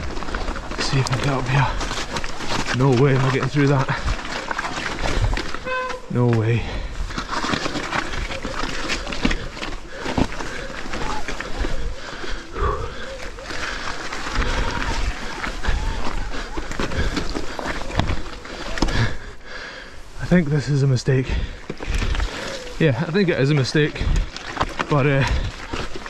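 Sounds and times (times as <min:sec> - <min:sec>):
heavy breathing and grunts: 0:06.1 - 0:26.0.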